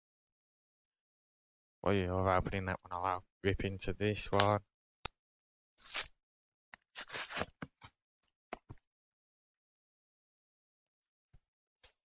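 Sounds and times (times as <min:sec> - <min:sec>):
card packaging tearing: 0:05.8 - 0:06.1, 0:07.0 - 0:07.6.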